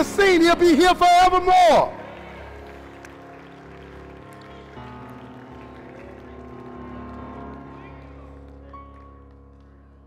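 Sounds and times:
soft sustained keyboard chords: 0:00.0 - 0:10.0.

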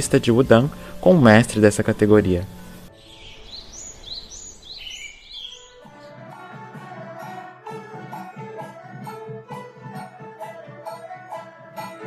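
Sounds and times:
bird chirps: 0:02.8 - 0:05.9
light percussion: 0:05.8 - 0:12.0
traditional instrumental ensemble: 0:05.8 - 0:12.0.

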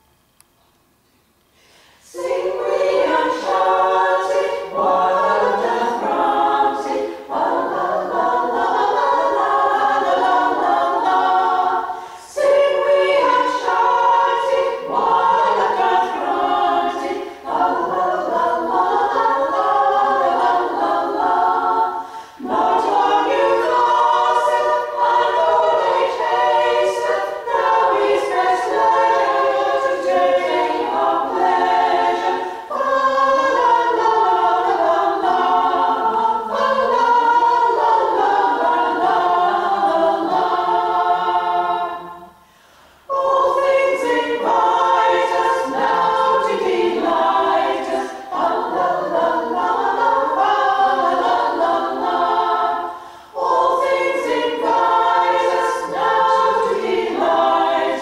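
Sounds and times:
women's choir singing a cappella: 0:01.7 - 0:58.0.

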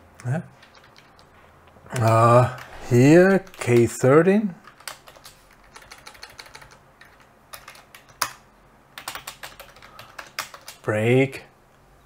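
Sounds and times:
typing on computer keyboard: 0:00.2 - 0:01.3, 0:01.9 - 0:02.7, 0:03.3 - 0:04.0, 0:04.6 - 0:08.4, 0:09.0 - 0:10.9.

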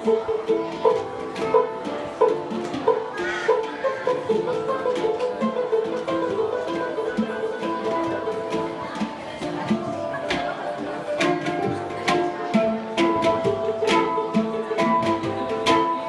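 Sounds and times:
handpans playing: 0:00.0 - 0:16.0.

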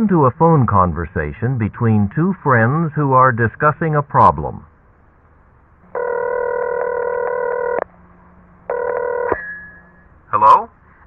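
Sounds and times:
telephone ringing: 0:05.9 - 0:07.9, 0:08.7 - 0:09.4
phone line click: 0:06.0 - 0:07.9, 0:08.7 - 0:09.5.

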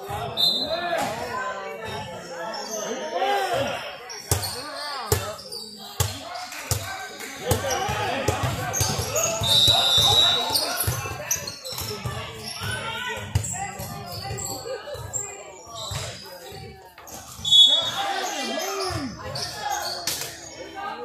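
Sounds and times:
voices calling out: 0:17.4 - 0:21.0.

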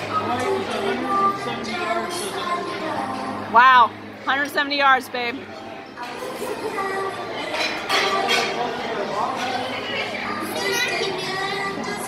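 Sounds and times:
adults and children chattering: 0:00.0 - 0:12.0.

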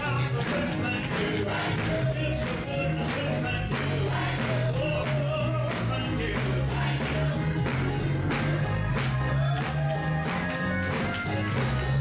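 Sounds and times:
voices singing together: 0:00.0 - 0:10.3
tambourine jingling: 0:00.0 - 0:12.0.

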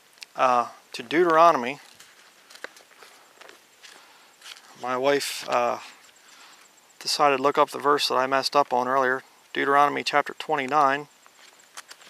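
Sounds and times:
man speaking: 0:00.3 - 0:01.9, 0:04.8 - 0:06.0, 0:07.0 - 0:11.1.

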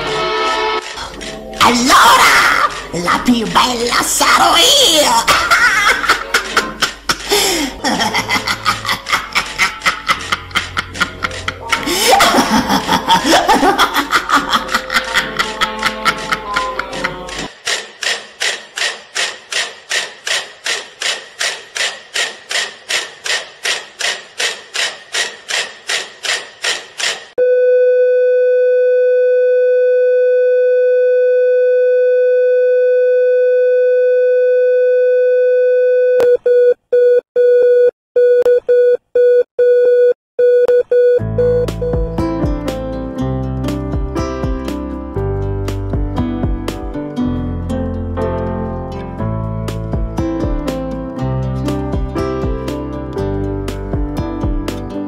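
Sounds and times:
flatline tone: 0:27.4 - 0:36.2
heart monitor beeping: 0:33.6 - 0:42.2.

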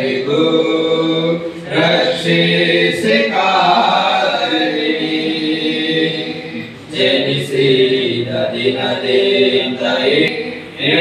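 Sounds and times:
young men singing devotional song: 0:00.0 - 0:11.0.

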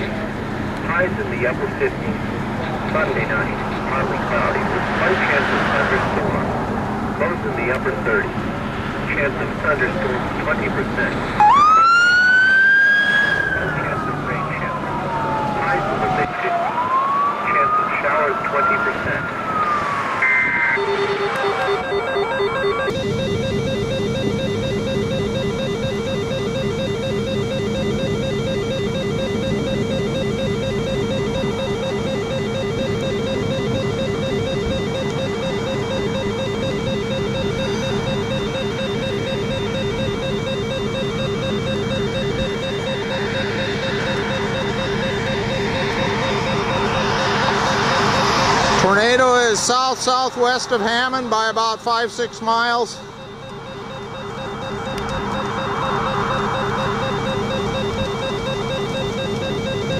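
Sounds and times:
siren-like pitch glide: 0:02.6 - 0:08.4, 0:09.2 - 0:59.9
warbling electronic alarm tone: 0:09.2 - 0:59.9.

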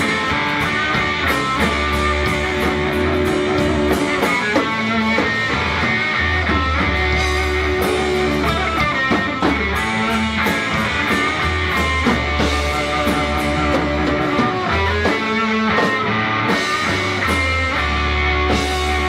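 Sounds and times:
bass guitar: 0:00.0 - 0:19.0
drum kit with cymbals: 0:00.0 - 0:19.0
electric guitar: 0:00.0 - 0:19.0.

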